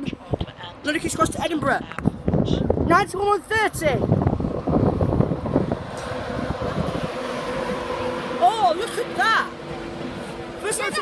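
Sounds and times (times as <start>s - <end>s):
wind buffeting microphone: 0.0s - 11.0s
train wheels rumbling on rails: 4.3s - 11.0s.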